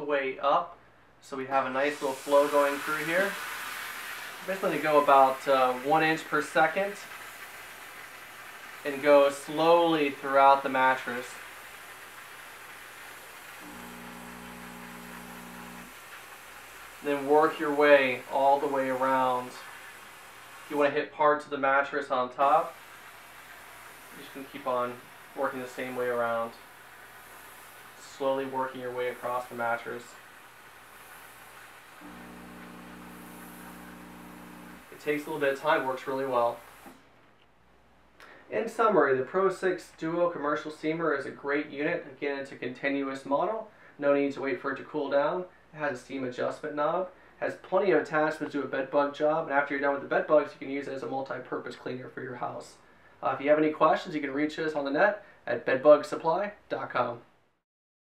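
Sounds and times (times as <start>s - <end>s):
low steady steam hiss: 0.0s - 37.2s, 38.0s - 57.4s
electric pump buzzing: 2.0s - 20.8s, 22.4s - 37.0s.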